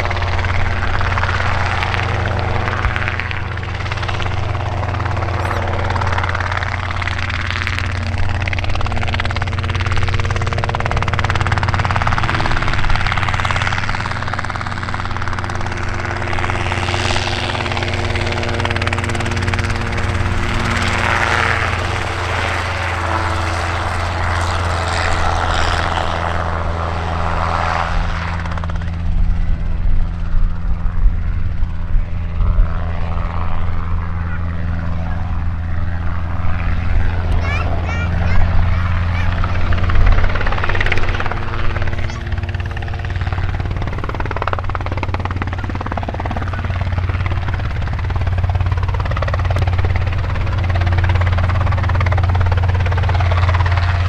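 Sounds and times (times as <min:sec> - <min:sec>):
helicopter engine and rotor: 0:00.0 - 0:54.0.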